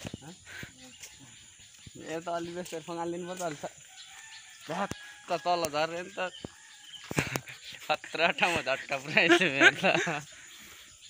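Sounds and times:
rooster crowing: 3.8s - 7.1s.

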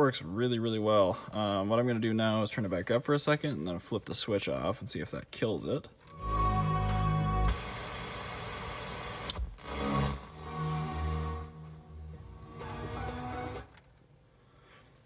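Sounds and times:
music from car stereo: 6.1s - 7.8s, 9.8s - 13.8s.

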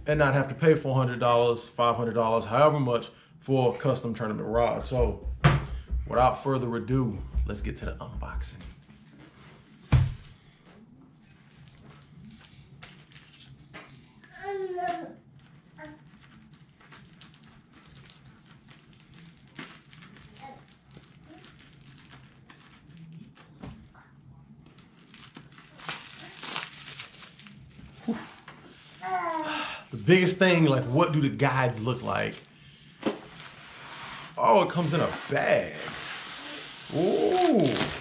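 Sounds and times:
plastic crinkling and tearing: 11.2s - 14.2s, 14.8s - 38.0s.

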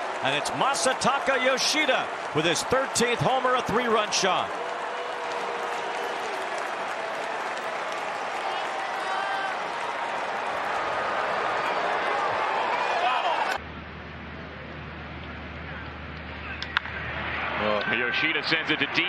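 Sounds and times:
crowd applause: 0.0s - 13.6s, 16.5s - 19.0s.

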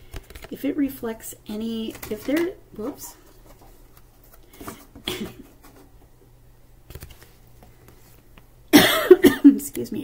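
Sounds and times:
woman coughing: 5.0s - 5.5s, 8.7s - 9.6s.

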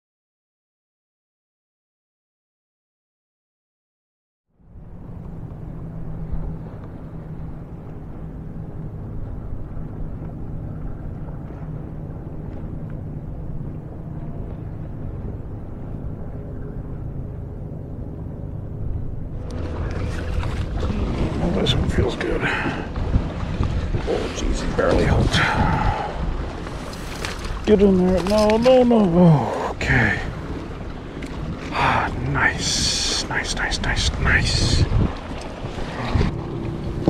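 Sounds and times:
distant motorboat engine drone: 4.5s - 37.0s
wind on microphone: 4.8s - 28.3s, 30.0s - 37.0s
wake water splashing against kayak: 19.4s - 33.2s, 33.8s - 37.0s.

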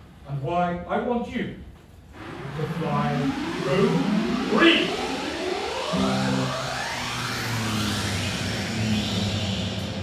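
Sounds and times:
jet engine whines rising: 2.2s - 10.0s.

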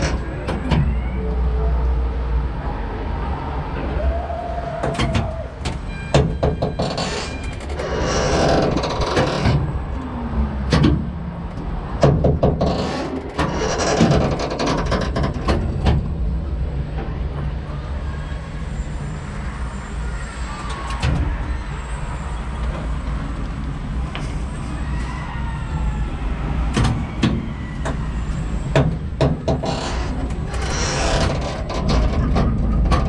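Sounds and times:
gondola ride low rumble: 0.0s - 33.0s.

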